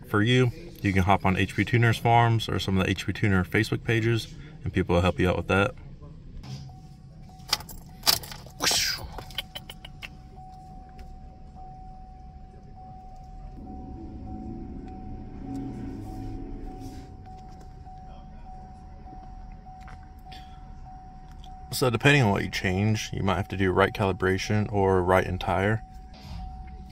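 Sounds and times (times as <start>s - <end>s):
low hum: 5.7s - 26.9s
thin steady high tone: 6.6s - 26.9s
car keys jangling: 7.3s - 11.2s
ignition key clicks: 7.4s - 11.2s.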